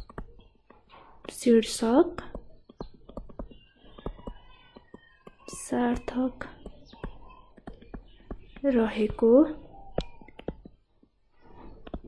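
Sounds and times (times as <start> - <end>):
stylus tapping on tablet screen: 0.0 - 12.0.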